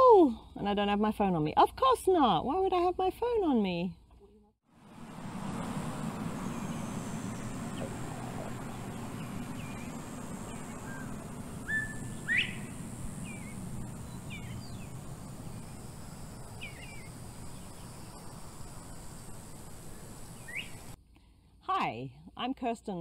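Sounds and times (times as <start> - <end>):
faint high hiss: 4.8 - 21.0
steady low hum: 4.8 - 21.0
birds chirping: 5.0 - 21.0.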